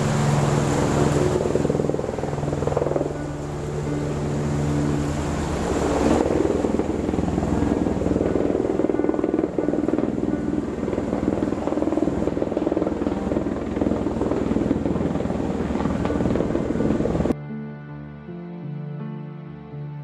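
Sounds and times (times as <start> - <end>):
helicopter rotor beating: 0.0 - 17.4.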